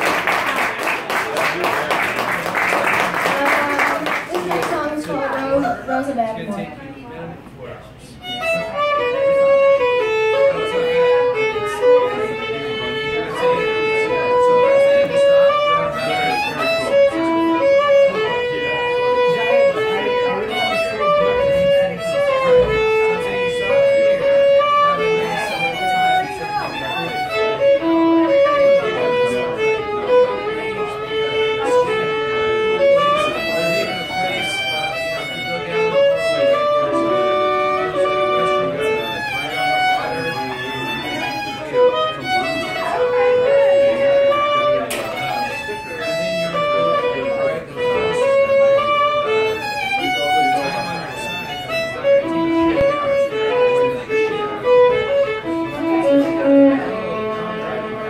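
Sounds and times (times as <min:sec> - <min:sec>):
fiddle playing fast tune: 0:00.0 - 0:06.5, 0:08.0 - 0:58.0.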